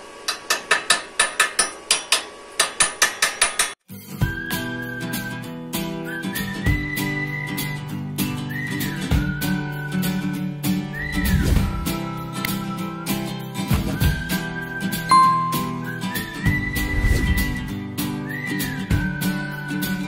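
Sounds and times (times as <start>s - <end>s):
whistled tune over guitar: 3.9s - 20.0s.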